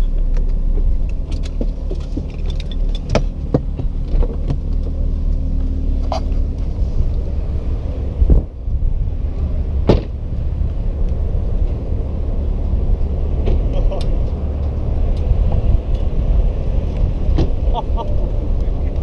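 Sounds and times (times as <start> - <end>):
low rumble: 0.0 - 19.0
clicks and knocks in car cabin: 0.4 - 4.9
car door thump: 9.8 - 10.2.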